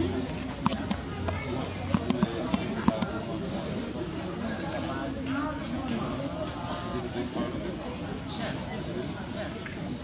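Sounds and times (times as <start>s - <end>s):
people talking outdoors: 0.0s - 10.0s
sharp clicks and taps: 0.6s - 3.1s.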